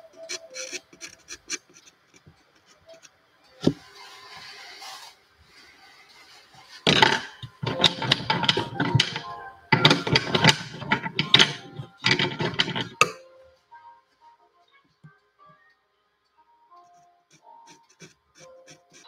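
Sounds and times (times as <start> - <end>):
small hard objects rattling: 6.6 - 13.1.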